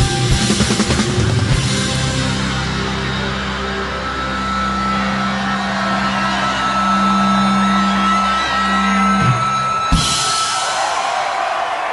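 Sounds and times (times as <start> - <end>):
distorted guitars and bass chord: 0.0 - 10.4
crowd noise: 0.0 - 11.9
steady high tone: 2.0 - 10.8.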